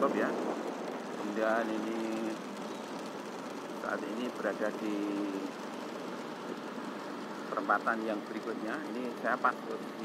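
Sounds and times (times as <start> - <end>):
vehicle engine and road noise: 0.0 - 10.0.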